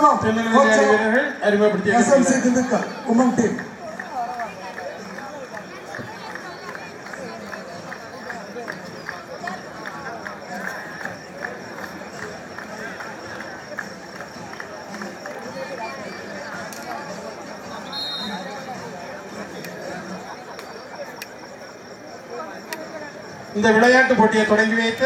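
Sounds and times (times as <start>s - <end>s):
spectators and players talking: 0.0s - 25.0s.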